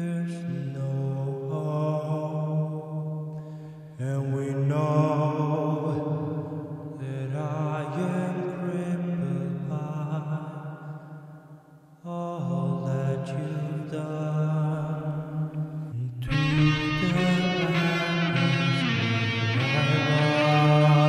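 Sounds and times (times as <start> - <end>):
choir vocals holding chords: 12.1 - 21.0.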